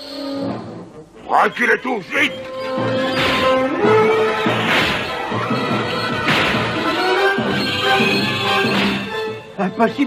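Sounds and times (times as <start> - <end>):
dramatic orchestral music: 0.0 - 10.0.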